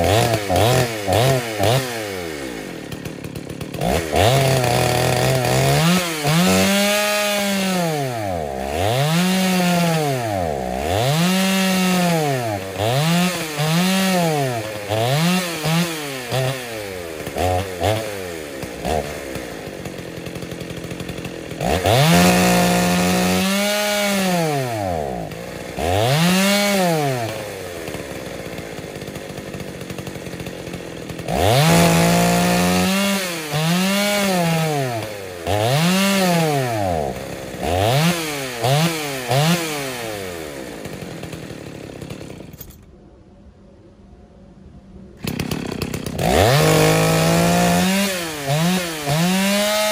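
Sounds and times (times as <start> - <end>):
chainsaw cutting log: 0.0 - 42.8, 45.2 - 49.9.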